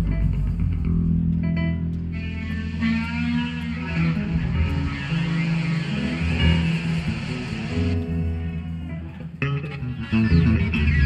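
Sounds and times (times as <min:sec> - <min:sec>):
bass guitar notes: 0:00.0 - 0:11.0
drums: 0:00.0 - 0:11.0
electric guitar lines: 0:00.0 - 0:11.0.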